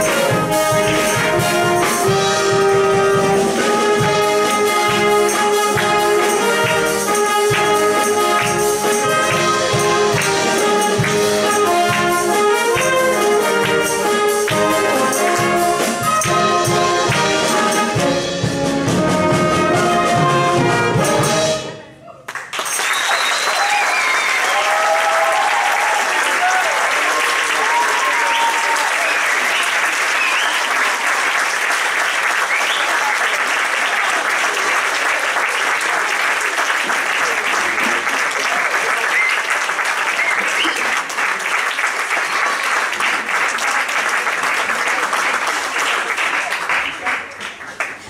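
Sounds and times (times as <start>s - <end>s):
people cheering: 21.9s - 48.0s
audience applauding: 22.2s - 48.0s.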